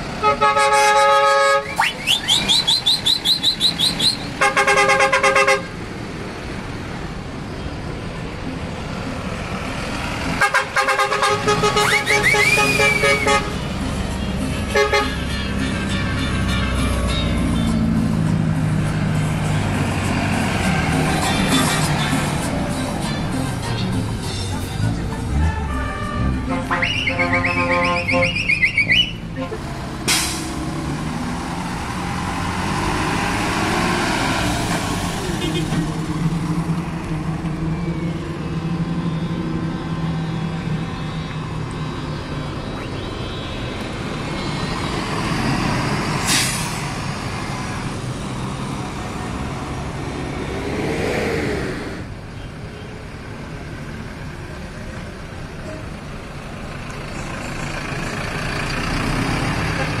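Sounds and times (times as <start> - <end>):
buses driving past: 0.0 - 60.0.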